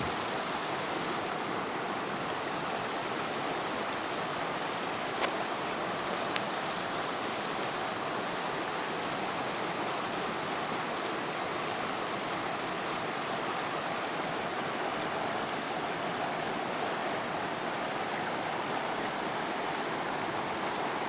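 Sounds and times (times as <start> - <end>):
river rushing over rocks: 0.0 - 21.0.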